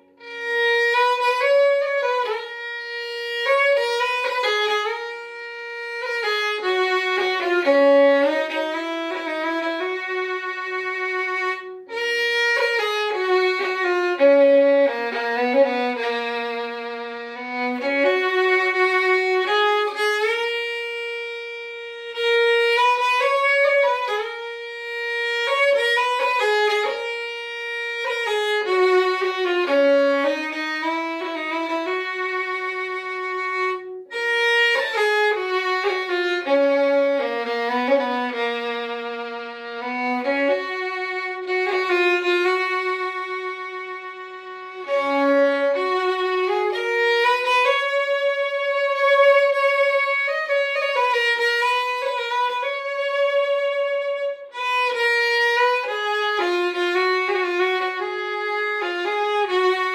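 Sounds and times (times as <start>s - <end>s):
solo fiddle playing slow air: 0.0s - 59.9s.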